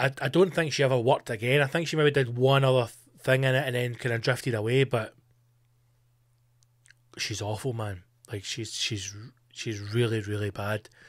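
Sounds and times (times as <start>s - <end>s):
faint low hum: 0.0s - 11.0s
mouth clicks: 6.6s - 7.2s.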